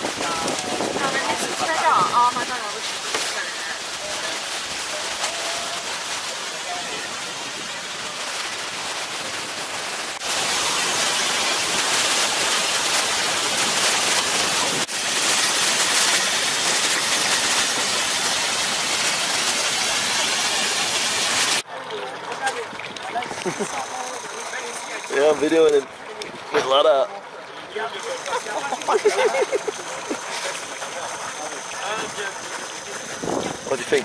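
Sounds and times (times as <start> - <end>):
waterfall rushing: 0.0 - 26.0.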